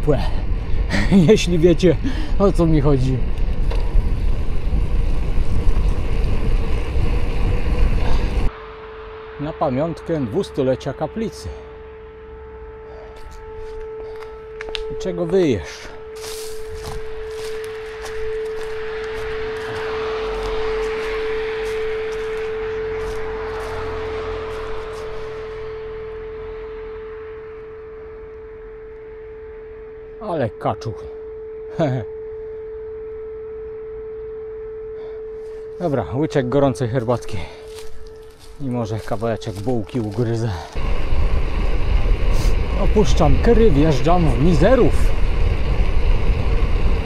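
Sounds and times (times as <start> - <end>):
low rumble: 0.0 - 47.0
steady howl: 0.0 - 47.0
steady whine: 0.0 - 47.0.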